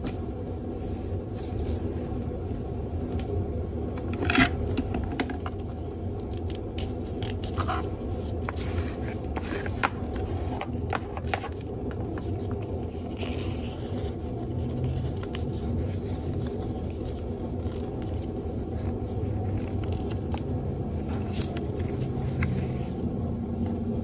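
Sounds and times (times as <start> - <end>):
paper scraping: 0.0 - 2.2, 6.8 - 23.0
paper crinkling and creasing: 0.0 - 23.1
steady low rumble: 0.0 - 24.0.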